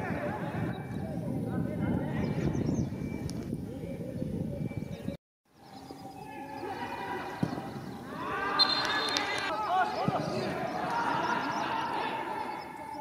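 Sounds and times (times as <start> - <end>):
footballers shouting: 6.2 - 13.0
football being kicked: 7.4 - 7.9.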